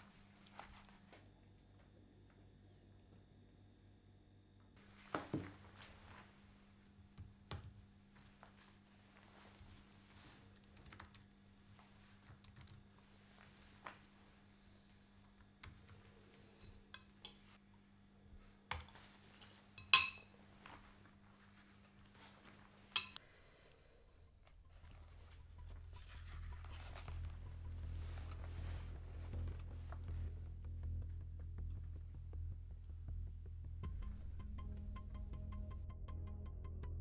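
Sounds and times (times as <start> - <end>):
laptop keyboard typing: 10.5 - 11.4, 12.0 - 12.9, 15.4 - 16.1
low rumble: 25.1 - 37.0.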